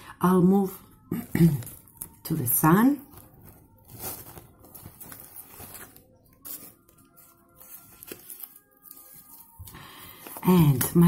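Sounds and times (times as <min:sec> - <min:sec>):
fabric pouch rustling and crinkling: 0:01.2 - 0:10.8.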